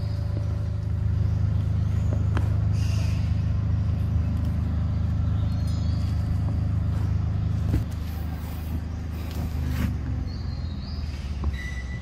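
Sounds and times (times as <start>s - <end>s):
motor engine humming: 0.0s - 12.0s
faint high chirp: 10.2s - 12.0s.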